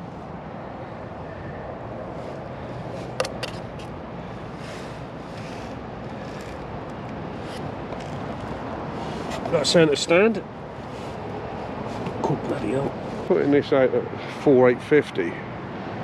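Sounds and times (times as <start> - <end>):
outdoor background noise: 0.0 - 16.0.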